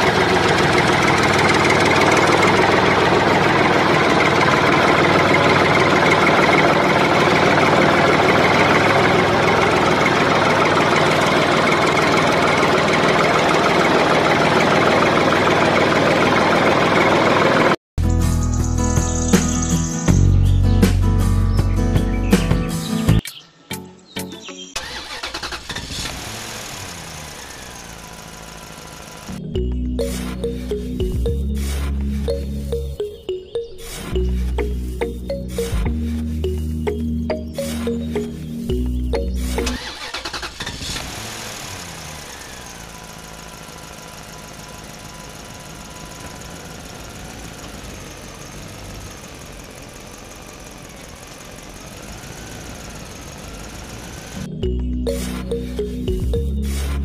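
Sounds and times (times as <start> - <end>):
engine-like running sound: 0.0 - 17.8, 24.8 - 57.0
background music: 18.0 - 25.0, 29.3 - 40.0, 54.4 - 57.0
short musical phrase: 30.0 - 38.5.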